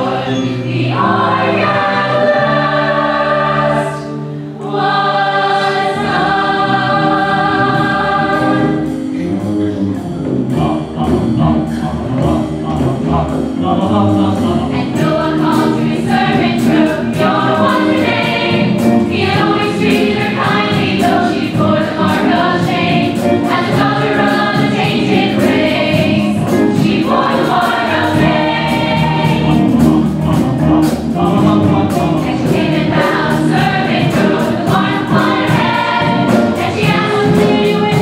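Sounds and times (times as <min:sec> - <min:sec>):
chorus singing: 0:00.0 - 0:38.0
live pit band: 0:00.0 - 0:38.0
steady percussion beat: 0:04.7 - 0:38.0.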